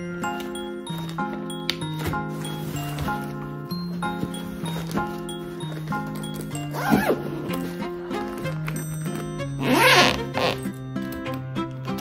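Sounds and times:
background music: 0.0 - 12.0
zipper pulled on fabric: 9.6 - 10.7.

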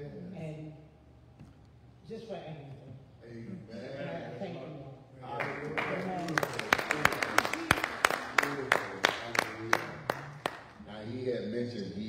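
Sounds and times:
people clapping in rhythm: 5.4 - 10.8.

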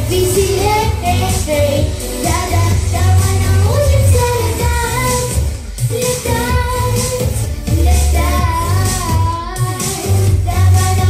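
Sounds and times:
backing track with pulsing bass: 0.0 - 11.0
girl singing into microphone: 0.0 - 11.0.

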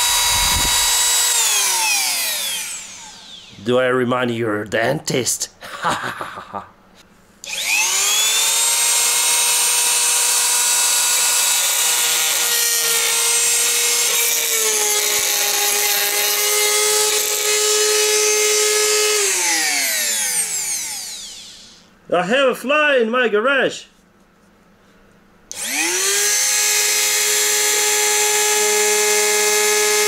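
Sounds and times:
rotary tool grinding metal: 0.0 - 3.6, 7.5 - 21.8, 25.5 - 30.0.

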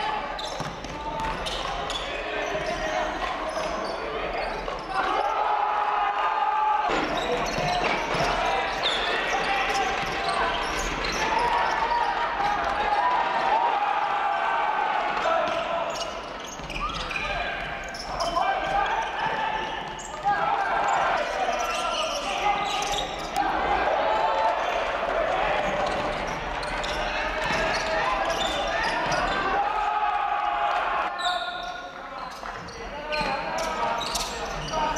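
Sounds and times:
ball bouncing on hardwood court: 0.4 - 1.7
people shouting: 4.9 - 17.5, 18.1 - 31.2.

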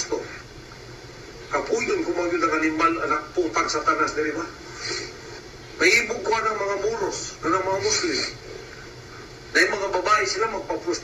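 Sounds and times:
recorded man speaking: 5.8 - 8.4, 9.5 - 11.0.

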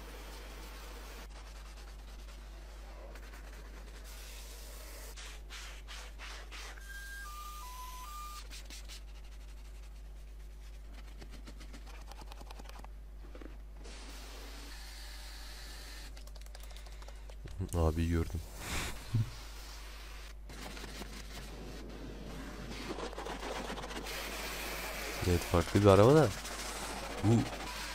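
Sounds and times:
short electronic beeps: 6.8 - 8.4
steady low hum: 7.8 - 27.9
brushes scrubbing surfaces: 22.4 - 27.9.

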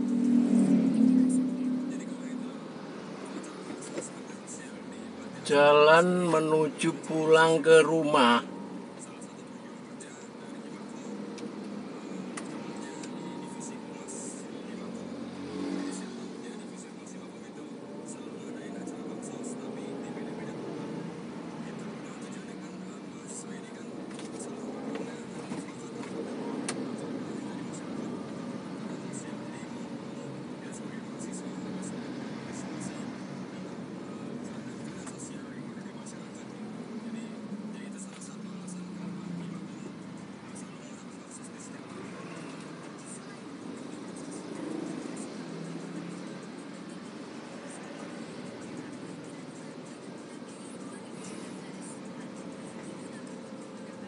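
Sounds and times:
car engine and road noise: 0.0 - 54.0
faint indistinct talk: 8.4 - 54.0.

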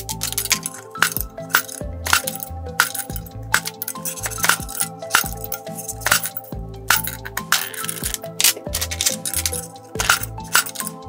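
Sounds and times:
background music: 0.0 - 11.0
splitting press clinking on stone: 0.1 - 11.0
stone pieces dropping on steel: 0.1 - 11.0.

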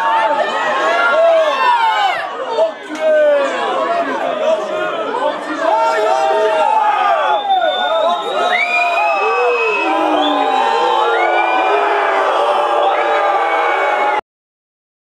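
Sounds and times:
crowd cheering and shouting: 0.0 - 14.2.

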